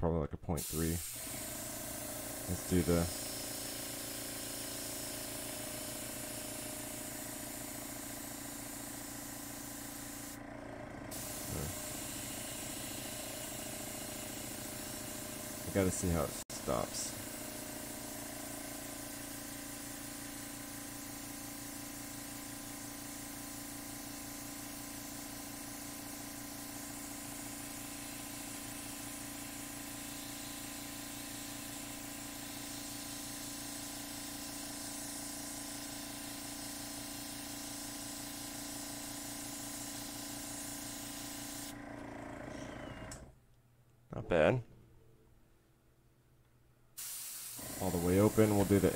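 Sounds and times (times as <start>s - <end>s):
airbrush hissing: 0.6s - 10.4s, 11.1s - 41.7s, 47.0s - 48.9s
steady hum: 11.0s - 18.4s.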